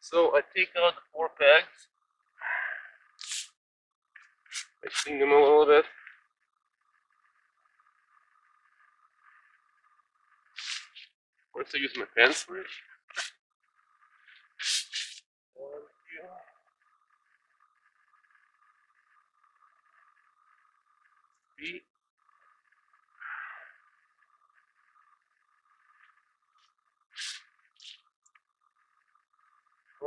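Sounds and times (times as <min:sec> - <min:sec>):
faint steady high whine: 0:04.2 - 0:30.0.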